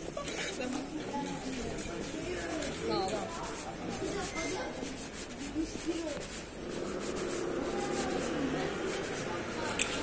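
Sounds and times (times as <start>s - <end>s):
scraping street noise: 0.0s - 10.0s.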